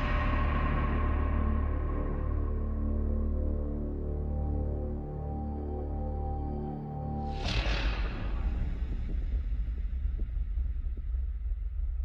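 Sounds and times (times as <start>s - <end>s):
deep rumbling drone: 0.0s - 12.0s.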